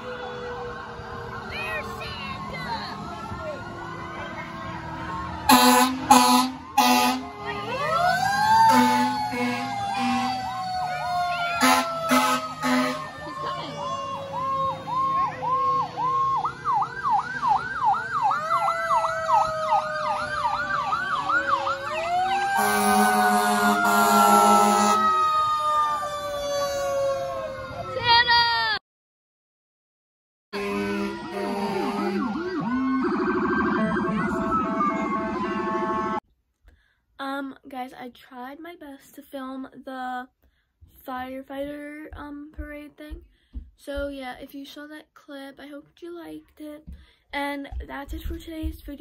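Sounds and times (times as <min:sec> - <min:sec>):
fire truck sirens wailing: 0:00.0 - 0:28.8, 0:30.6 - 0:36.2
loud horn blasts: 0:05.5 - 0:07.7, 0:08.6 - 0:10.7, 0:11.6 - 0:13.2, 0:22.6 - 0:25.2, 0:30.6 - 0:32.7, 0:35.0 - 0:36.2.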